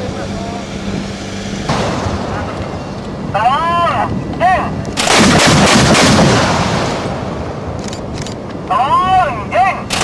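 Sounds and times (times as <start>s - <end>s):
anti-aircraft gunfire: 5.0s - 7.8s.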